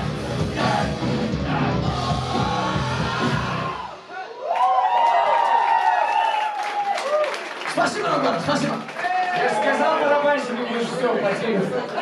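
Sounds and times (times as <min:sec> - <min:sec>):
live rock band playing loud: 0:00.0 - 0:04.1
audience cheering and whooping: 0:02.4 - 0:07.9, 0:08.9 - 0:10.1.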